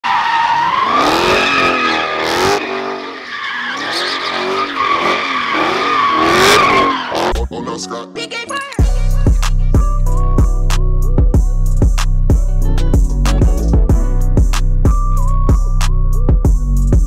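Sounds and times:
tires squealing: 0.0 - 7.5
car engine revving: 0.4 - 7.5.

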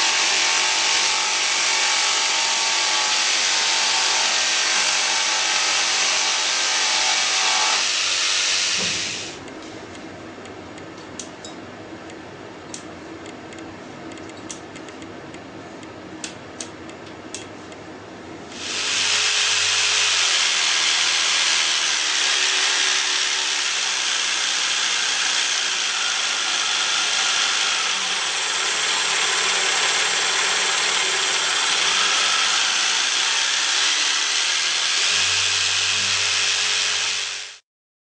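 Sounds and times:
jigsaw running: 0.0 - 9.4, 18.5 - 37.6.

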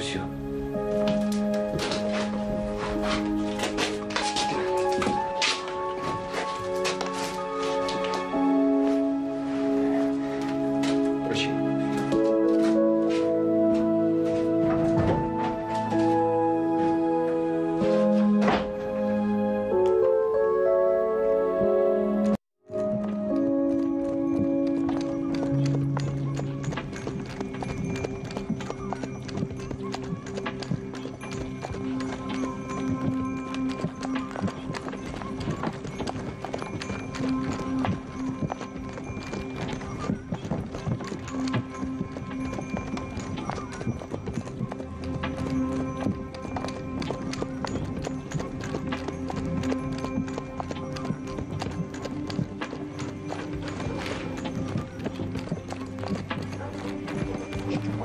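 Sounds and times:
music with long held notes: 0.0 - 58.0
horse hoofbeats trotting: 0.4 - 20.4, 21.5 - 58.0.

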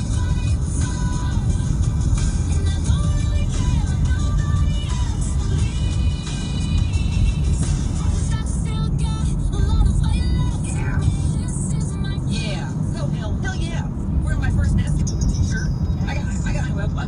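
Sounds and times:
music: 0.0 - 13.0
tyre and engine rumble: 0.0 - 17.0.

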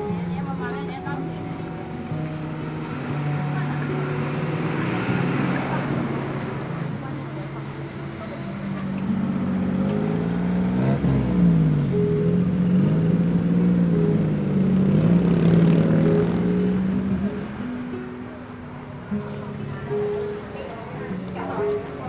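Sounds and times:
vehicle engines passing: 0.0 - 22.0.

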